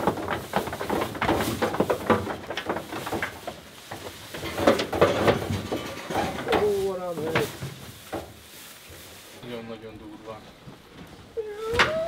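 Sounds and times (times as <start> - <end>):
sheep knocking in metal trailer: 0.0 - 8.3.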